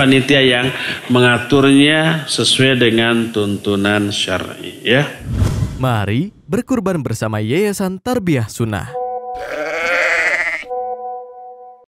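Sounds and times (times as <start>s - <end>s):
held music chord: 8.9s - 9.6s, 10.7s - 11.9s
drawn-out bleat: 9.4s - 10.7s.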